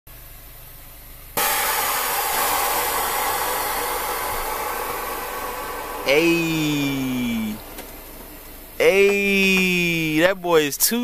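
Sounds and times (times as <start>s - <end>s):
hiss of air dumping: 1.4s - 10.0s.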